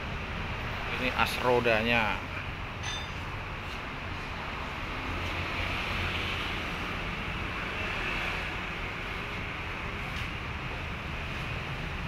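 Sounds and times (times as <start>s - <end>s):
engine rumbling: 0.0s - 7.6s.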